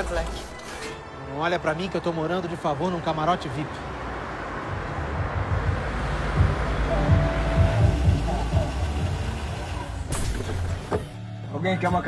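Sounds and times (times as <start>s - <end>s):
car engine rumbling: 3.8s - 11.3s.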